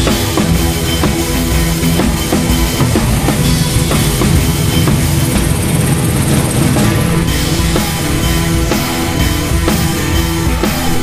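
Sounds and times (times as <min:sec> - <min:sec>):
festival music: 0:00.0 - 0:11.0
motorcycle engine rumbling: 0:00.0 - 0:11.0.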